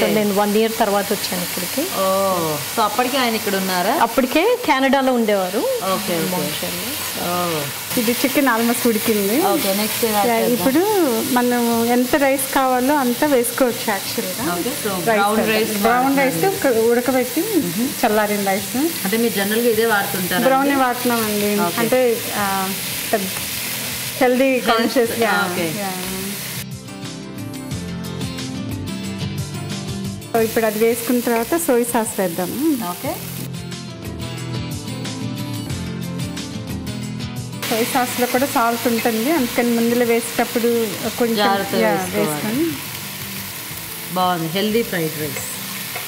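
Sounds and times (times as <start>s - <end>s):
woman speaking: 0.0s - 23.3s, 24.2s - 26.3s, 37.7s - 42.8s
food sizzling in a pan: 0.0s - 46.0s
person talking: 20.2s - 22.1s, 41.0s - 42.8s.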